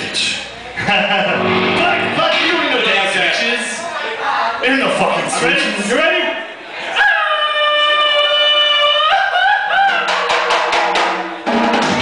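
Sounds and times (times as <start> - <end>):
sustained low bass note: 1.3 - 3.2
drum kit quick hits: 1.4 - 3.2, 10.3 - 12.0.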